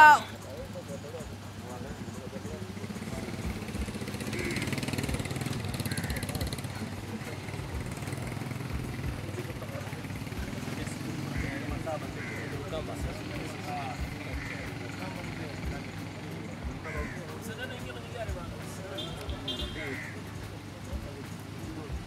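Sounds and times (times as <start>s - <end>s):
people talking: 0.0s - 22.0s
vehicle engine idling: 0.0s - 22.0s.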